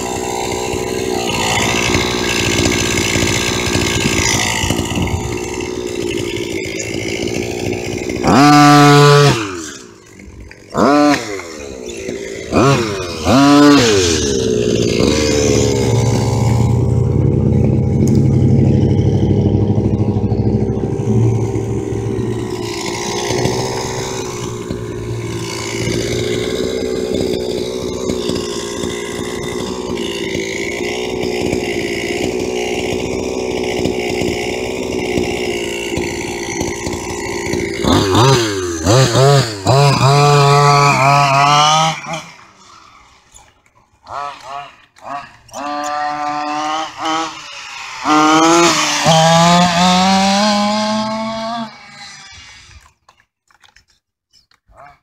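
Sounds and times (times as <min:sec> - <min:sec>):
two-stroke engine revving: 0:00.0 - 0:53.1.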